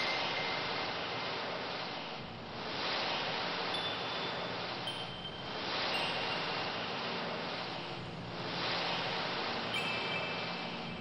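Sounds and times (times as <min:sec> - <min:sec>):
surf-like noise wash: 0:00.0 - 0:11.0.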